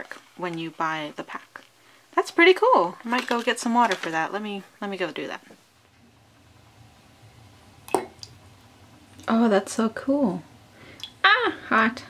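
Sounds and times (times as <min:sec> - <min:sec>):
toy plopping into water: 0:07.9 - 0:08.4.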